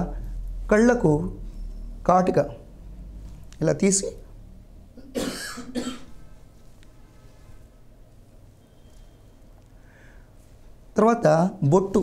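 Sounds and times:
man coughing: 5.0s - 6.2s.

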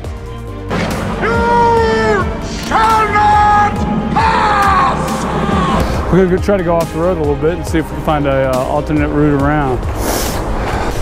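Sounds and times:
film score music: 0.0s - 11.0s
man bellowing a long shout: 1.2s - 6.0s.

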